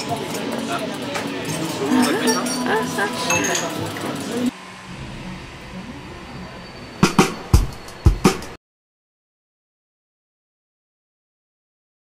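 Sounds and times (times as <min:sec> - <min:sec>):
faint background murmur: 0:00.0 - 0:04.5.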